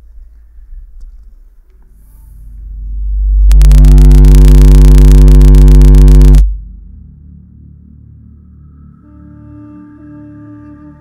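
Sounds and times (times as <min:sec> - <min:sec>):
loud electrical mains hum: 0:03.4 - 0:06.5.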